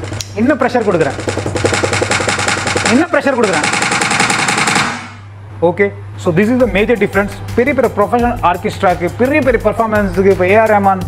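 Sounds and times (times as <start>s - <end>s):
drumstick roll on electronic pad: 0.0s - 4.2s.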